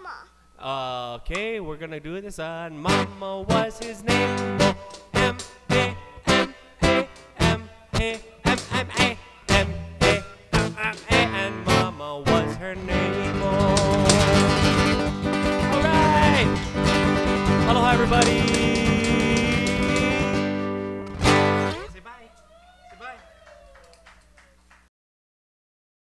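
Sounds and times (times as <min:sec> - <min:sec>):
person singing: 0:02.4 - 0:20.8
acoustic guitar strumming: 0:02.8 - 0:22.0.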